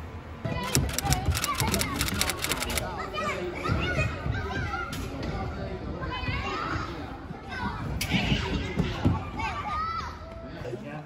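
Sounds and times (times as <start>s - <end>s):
children calling and chattering: 0.4s - 5.3s
sharp clicks: 0.6s - 2.8s.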